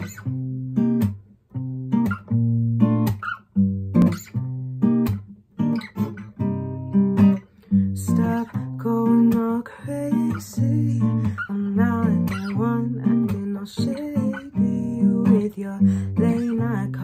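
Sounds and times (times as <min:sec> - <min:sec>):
acoustic guitar strumming: 0:00.0 - 0:17.0
person singing: 0:07.8 - 0:17.0.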